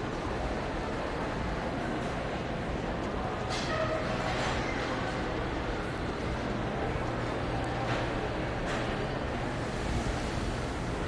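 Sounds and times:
shopping mall background noise: 0.0s - 11.0s.

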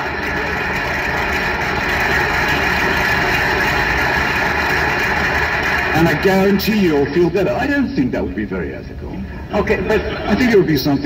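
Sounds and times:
truck engine rumble: 0.0s - 10.3s.

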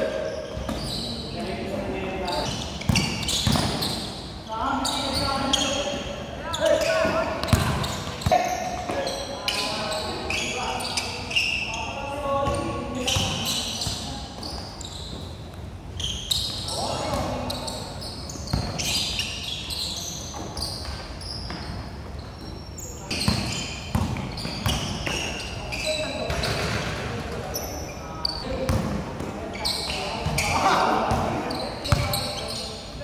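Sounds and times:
shoe squeaks: 0.0s - 28.6s, 29.4s - 33.0s
basketball bouncing on court: 2.8s - 4.1s, 7.0s - 9.0s, 18.5s - 19.0s, 23.1s - 25.3s, 28.6s - 29.0s, 30.2s - 32.4s.

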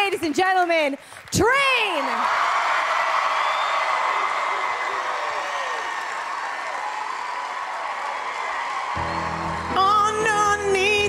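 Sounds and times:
audience cheering and applauding: 1.1s - 11.0s
whoops: 2.1s - 10.1s.

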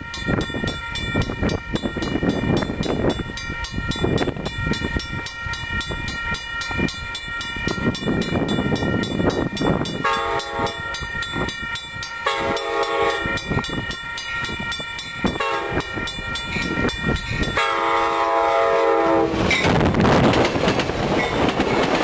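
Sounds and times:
bell ringing rapidly: 0.0s - 17.8s
train wheels clattering on rails: 0.0s - 22.0s
train horn blasts: 10.0s - 11.0s, 12.2s - 13.4s, 15.4s - 16.1s, 17.6s - 19.6s.

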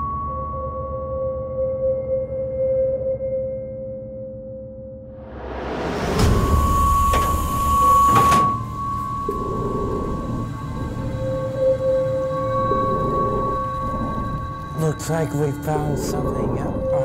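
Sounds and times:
low tone: 0.0s - 17.0s
rumbling noise: 5.4s - 17.0s
electronic drone tones: 6.1s - 17.0s
person speaking: 14.7s - 17.0s.

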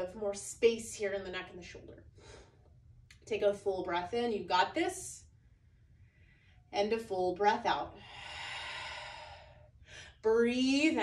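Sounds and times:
faint breath: 5.8s - 6.7s, 8.0s - 10.2s
woman exhaling: 8.0s - 10.2s.

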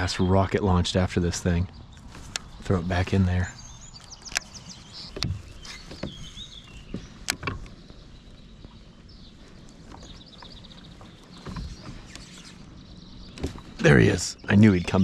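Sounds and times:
birds chirping: 0.0s - 15.0s
bird trill: 2.6s - 15.0s.

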